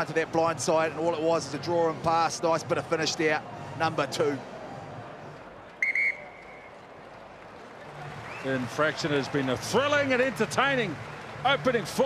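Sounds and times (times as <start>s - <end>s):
stadium crowd murmur: 0.0s - 12.0s
referee's whistle: 5.8s - 6.7s.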